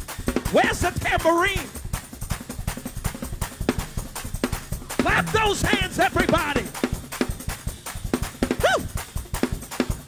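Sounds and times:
fast drum kit rhythm: 0.0 - 10.0.

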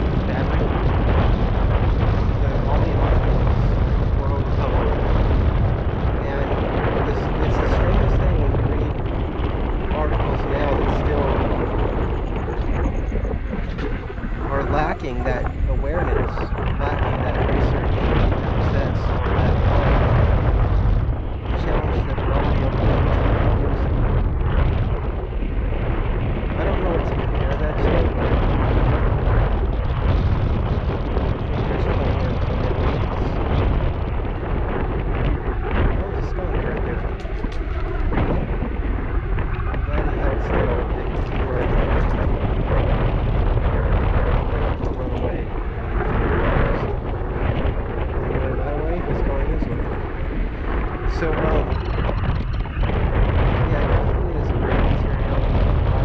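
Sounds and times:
wind rumble on microphone: 0.0 - 56.0.

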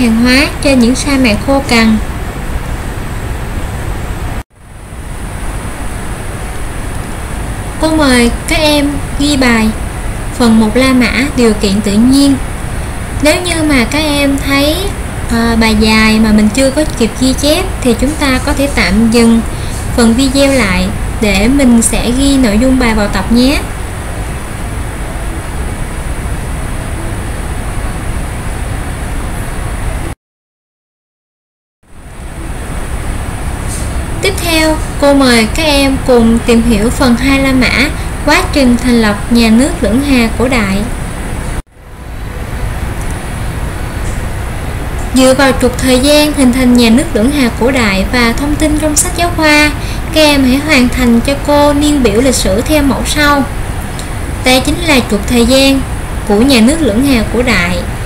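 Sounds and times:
high constant whine: 0.0 - 30.2, 31.8 - 58.0.

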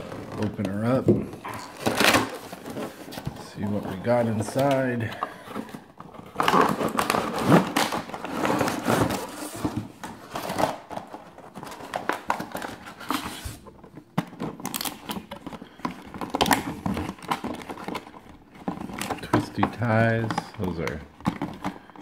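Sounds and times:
cardboard and plastic crinkling: 0.0 - 22.0.

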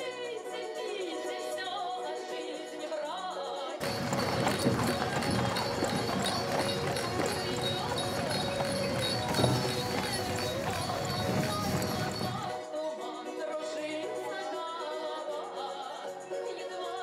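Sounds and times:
music: 0.0 - 17.0
cart rolling: 3.8 - 12.6
hooves clip-clopping on dirt: 3.8 - 12.6
people's voices: 3.8 - 12.6.

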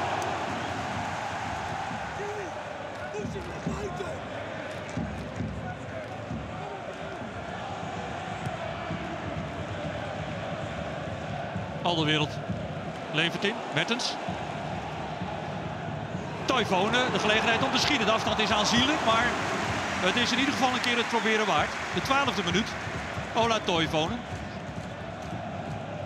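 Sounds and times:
crowd shouts: 0.0 - 5.0, 5.7 - 26.0
stadium crowd din: 0.0 - 26.0.

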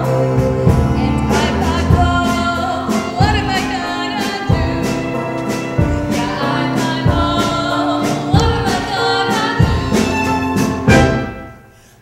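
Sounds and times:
steady drum beat: 0.0 - 11.6
live band playing: 0.0 - 11.9.

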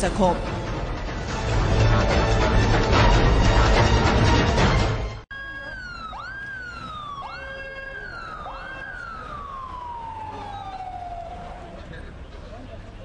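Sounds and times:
ambulance siren wailing: 5.3 - 13.0.

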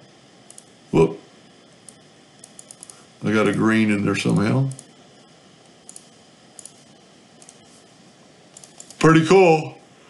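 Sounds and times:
computer mouse clicking: 0.5 - 0.7, 1.8 - 3.6, 4.7 - 4.9, 5.8 - 6.8, 7.4 - 7.8, 8.5 - 9.0.

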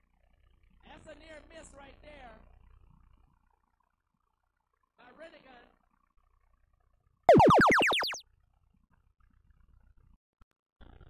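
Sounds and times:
quick rising electronic sweeps: 7.3 - 8.2.

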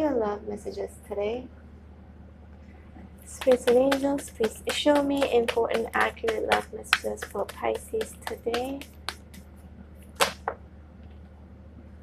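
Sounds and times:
card swish: 8.8 - 10.4.

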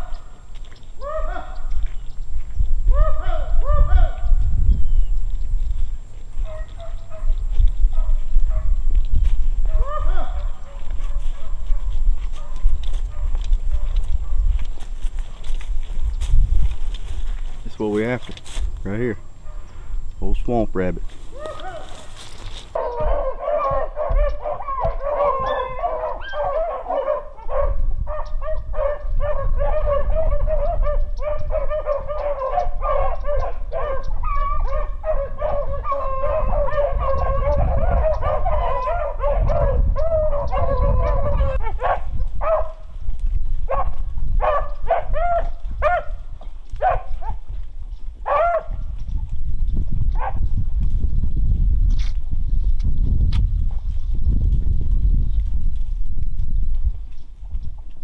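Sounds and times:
dogs barking: 0.0 - 0.4, 1.0 - 2.0, 2.9 - 4.6, 6.2 - 15.6, 19.3 - 19.8, 21.3 - 43.0, 43.6 - 47.6, 48.2 - 48.9, 50.1 - 50.5
dogs baying: 0.0 - 2.0, 2.8 - 4.6, 6.2 - 16.0, 19.3 - 19.9, 21.2 - 43.0, 43.6 - 49.0.

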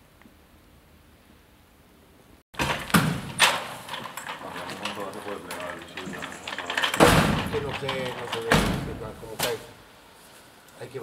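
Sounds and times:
sharp knocks and clatter: 2.6 - 9.7
people talking: 4.4 - 9.7, 10.8 - 11.0.

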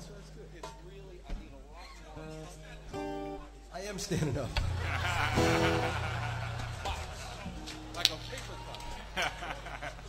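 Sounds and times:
men talking: 0.0 - 10.0
laughter: 4.1 - 7.8, 9.0 - 10.0.

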